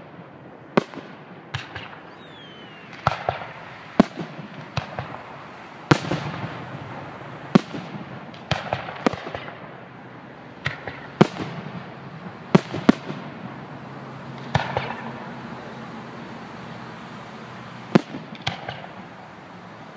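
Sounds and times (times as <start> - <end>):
small fireworks pops: 0.0 - 15.6, 16.5 - 19.9
fireworks bangs: 0.0 - 19.9.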